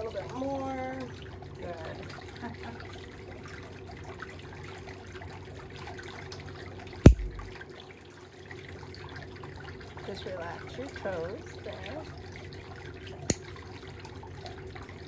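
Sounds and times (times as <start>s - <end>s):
sharp knock: 7.1s - 7.5s
steady low hum: 7.1s - 7.6s.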